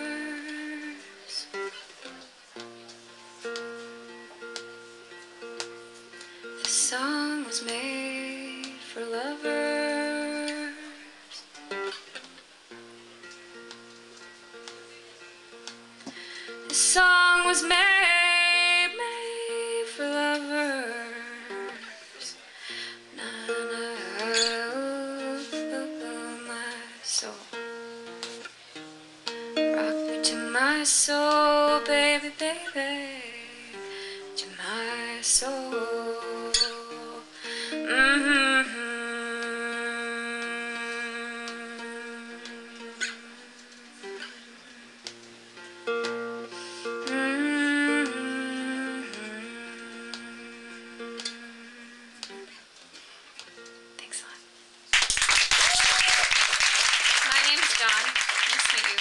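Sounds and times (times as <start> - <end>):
woman singing wordlessly: 0.0 - 1.7, 6.6 - 11.4, 16.5 - 22.4, 23.0 - 28.4, 29.5 - 45.3, 46.1 - 52.6
fingerpicked acoustic guitar: 0.0 - 55.0.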